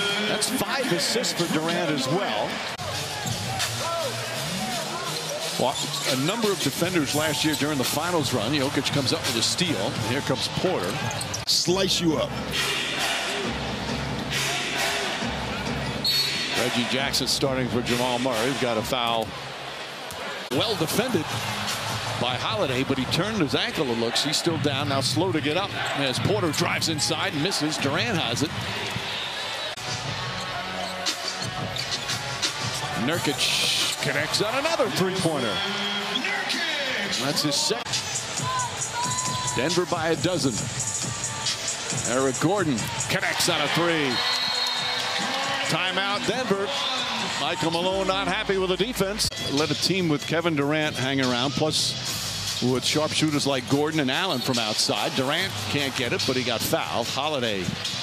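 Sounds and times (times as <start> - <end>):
arena music: 0.0 - 19.9, 20.5 - 58.0
arena crowd noise: 0.0 - 58.0
sneaker squeaks: 10.8 - 11.5, 28.8 - 32.8.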